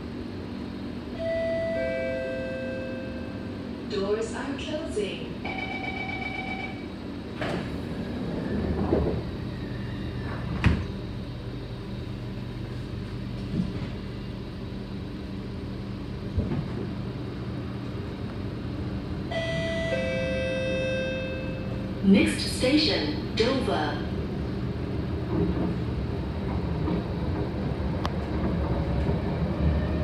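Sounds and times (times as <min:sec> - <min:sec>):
train running with low hum: 0:00.0 - 0:30.0
train doors sliding shut: 0:07.3 - 0:11.2.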